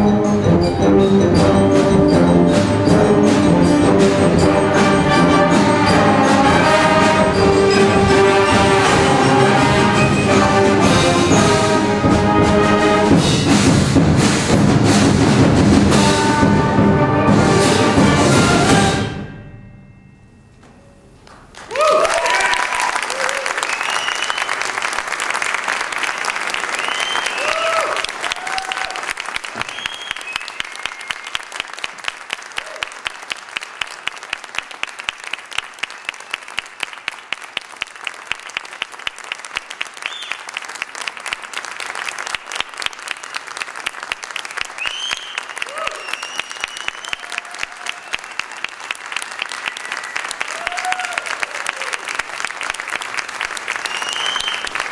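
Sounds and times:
close person clapping: 21.2 - 54.9
audience applauding: 21.3 - 54.9
whooping cheers: 21.7 - 24.6, 26.7 - 31.2, 32.6 - 33.0, 44.8 - 48.5, 49.3 - 52.2.

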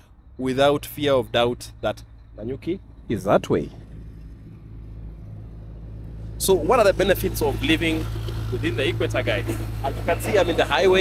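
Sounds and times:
vehicle engine and tyre rumble: 0.0 - 11.0.

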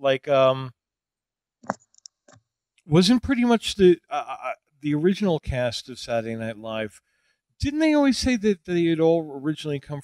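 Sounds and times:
man speaking: 0.0 - 0.7, 2.9 - 6.9, 7.6 - 10.0.

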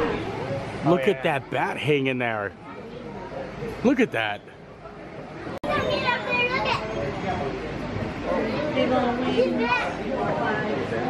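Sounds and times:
people chattering: 0.0 - 11.0
children's voices: 5.6 - 7.5, 8.2 - 10.9.

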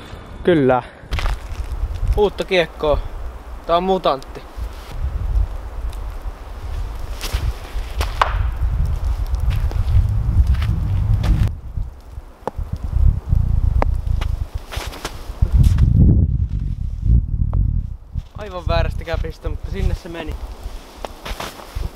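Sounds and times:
footsteps in wet snow: 1.1 - 2.5, 4.0 - 12.6, 14.0 - 15.9, 20.4 - 21.9.

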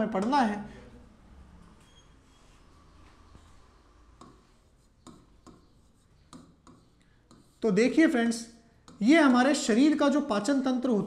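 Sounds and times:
pen tapping on whiteboard screen: 0.1 - 0.4, 4.2 - 7.6, 8.8 - 9.6
small writing ticks: 4.2 - 7.7, 8.8 - 9.4.

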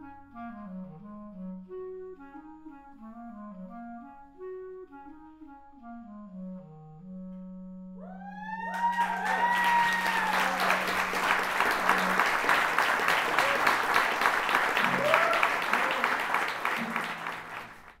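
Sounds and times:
clarinet low held note: 0.0 - 8.9
audience whooping: 8.0 - 18.0
audience applauding: 8.7 - 18.0.

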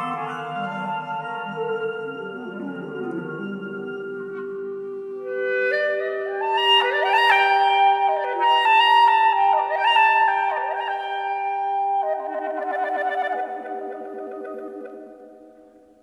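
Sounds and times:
instrumental background music: 0.0 - 16.0.

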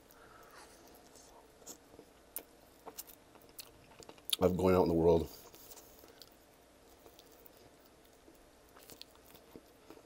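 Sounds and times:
chewing chicken wing: 5.3 - 10.0.

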